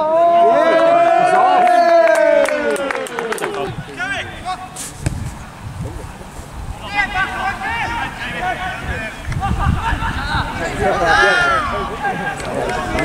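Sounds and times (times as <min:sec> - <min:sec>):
voices shouting: 0:00.0 - 0:04.8, 0:06.1 - 0:13.0
low rumbles on microphone: 0:03.7 - 0:06.9.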